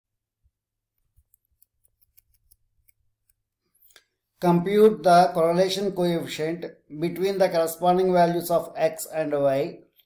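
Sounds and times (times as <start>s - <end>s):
mouse scroll wheel ticking: 1.0s - 3.4s.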